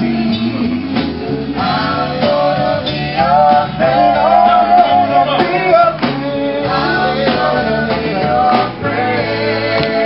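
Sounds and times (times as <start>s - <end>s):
bass guitar: 0.0s - 10.0s
guitar: 0.0s - 10.0s
person singing lead vocals: 0.0s - 10.0s.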